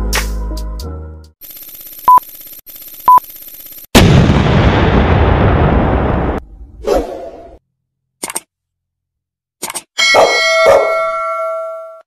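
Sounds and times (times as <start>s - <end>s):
short clicks: 8.2s - 8.5s
ringing chime: 10.0s - 12.0s.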